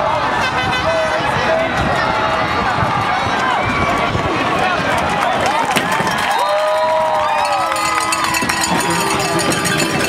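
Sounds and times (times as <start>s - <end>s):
stadium crowd shouting: 0.0s - 10.0s.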